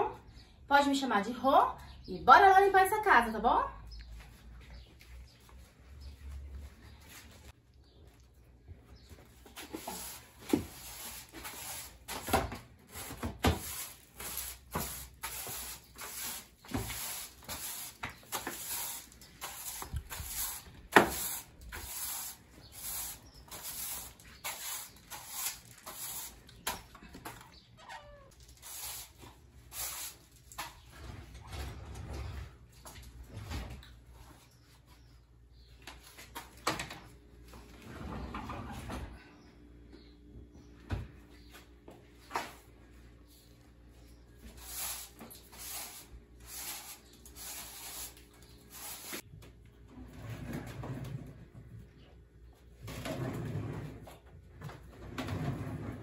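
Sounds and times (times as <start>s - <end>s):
broom sweeping hard floor: 9.4s - 26.8s, 28.5s - 30.8s, 44.1s - 49.3s.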